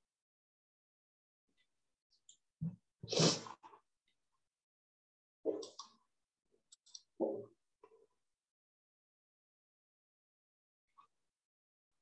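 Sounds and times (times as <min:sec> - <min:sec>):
person sneezing: 0:03.0 - 0:03.5.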